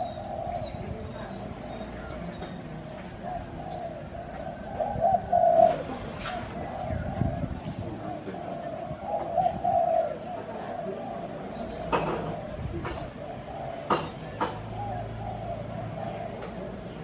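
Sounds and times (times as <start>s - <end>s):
birds calling: 0.0s - 17.0s.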